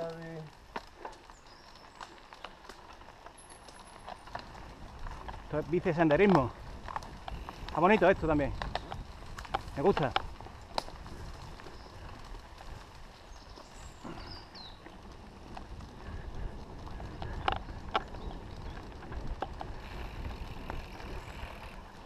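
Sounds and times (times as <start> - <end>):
bike rattles and knocks: 0.0 - 22.0
tyres rumbling on dirt: 0.0 - 22.0.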